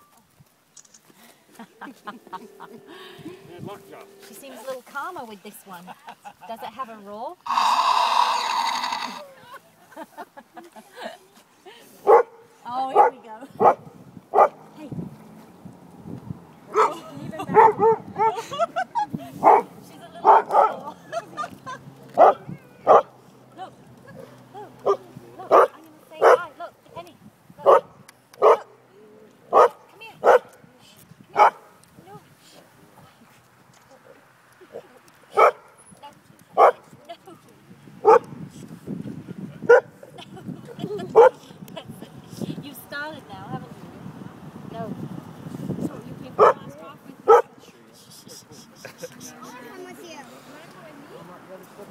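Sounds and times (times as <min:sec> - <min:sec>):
dog barking: 0:12.0 - 0:14.6, 0:16.7 - 0:18.3, 0:19.4 - 0:20.8, 0:22.2 - 0:23.1, 0:24.8 - 0:26.5, 0:27.6 - 0:28.7, 0:29.5 - 0:30.6, 0:31.4 - 0:31.6, 0:35.3 - 0:35.7, 0:36.6 - 0:36.8, 0:38.0 - 0:38.3, 0:39.7 - 0:40.0, 0:41.2 - 0:41.4, 0:46.4 - 0:46.7, 0:47.3 - 0:47.5.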